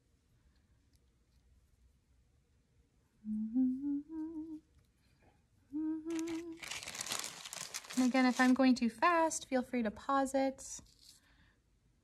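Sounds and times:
woman humming: 3.2s - 4.7s, 5.7s - 6.7s
loud crinkling rustle: 6.1s - 8.6s.

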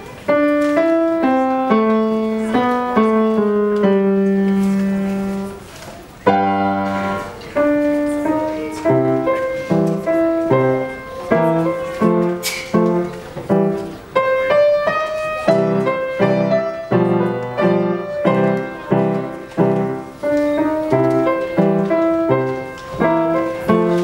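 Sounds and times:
upright piano playing: 0.0s - 24.0s.

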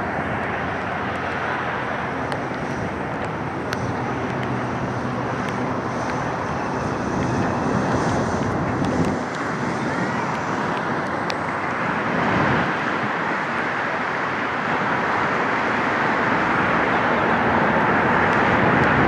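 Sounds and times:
outdoor background noise: 0.0s - 19.0s.

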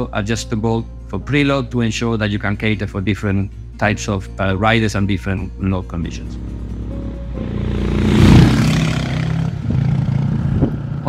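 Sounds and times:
motorcycle engine passing by: 6.2s - 11.0s.

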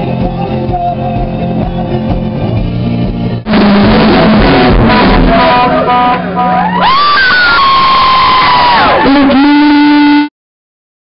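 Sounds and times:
rock band playing loudly: 0.0s - 8.1s.

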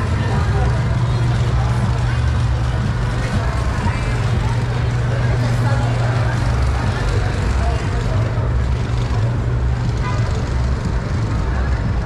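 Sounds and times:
vehicle engines idling and passing: 0.0s - 12.0s
voices of passers-by: 0.0s - 12.0s.

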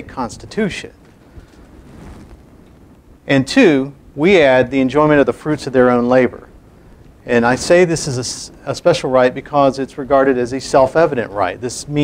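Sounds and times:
faint hum and hiss: 0.0s - 12.0s.

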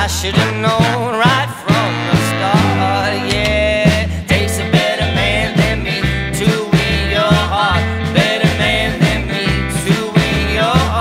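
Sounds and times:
upright double bass: 0.0s - 11.0s
electric guitar: 0.3s - 11.0s
steady beat: 2.4s - 5.0s.

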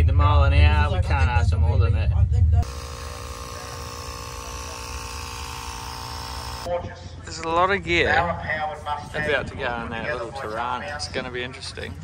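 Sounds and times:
steady mechanical hum: 0.0s - 6.7s.

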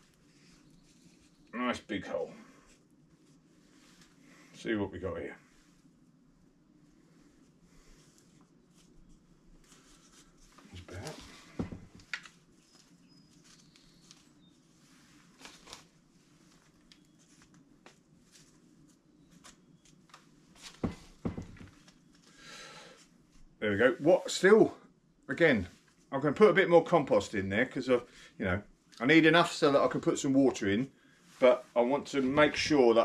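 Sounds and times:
low room tone: 0.0s - 33.0s
soil and plastic cup rustling: 7.8s - 22.3s.

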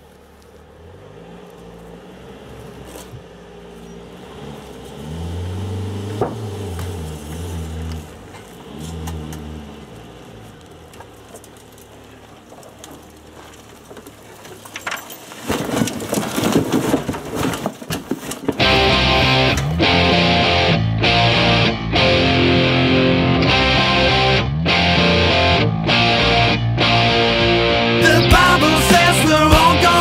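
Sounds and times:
car crashing down: 4.6s - 20.2s.

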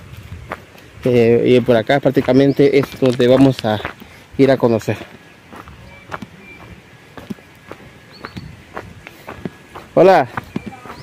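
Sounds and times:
footsteps crunching on leaves: 0.0s - 11.0s.

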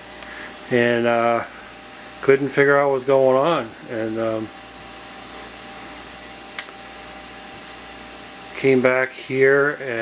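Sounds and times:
room hum with faint tone: 0.0s - 10.0s.

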